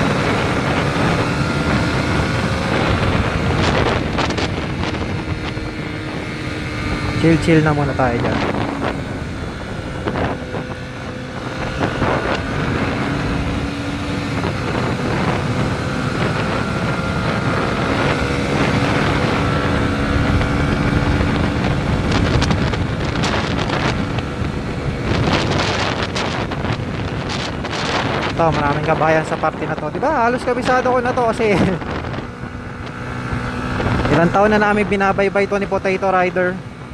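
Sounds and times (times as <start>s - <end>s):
motorcycle engine running: 0.0s - 36.9s
wind buffeting microphone: 0.0s - 36.9s.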